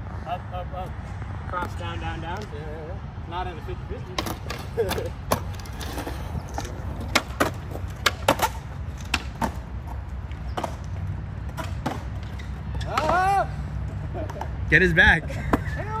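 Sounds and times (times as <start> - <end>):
skateboard wheels rolling on concrete: 0.0 - 16.0
person exclaiming: 12.9 - 13.6, 15.7 - 16.0.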